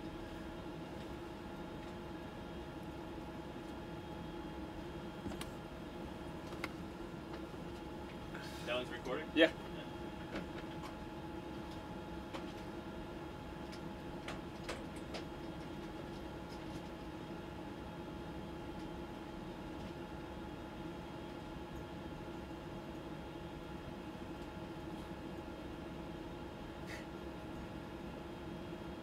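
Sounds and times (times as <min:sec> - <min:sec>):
cabin ventilation hum: 0:00.0 - 0:29.0.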